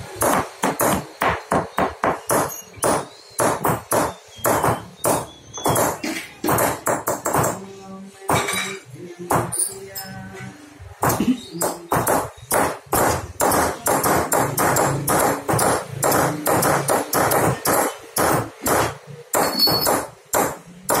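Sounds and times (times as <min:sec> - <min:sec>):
hammers tapping chisels on metal: 0:00.0 - 0:07.7, 0:08.3 - 0:21.0.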